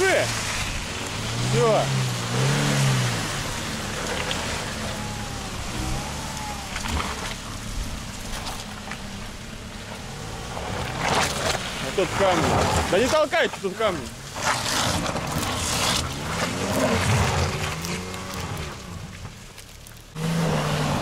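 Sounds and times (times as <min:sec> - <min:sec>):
off-road vehicle engines running: 0:00.0 - 0:21.0.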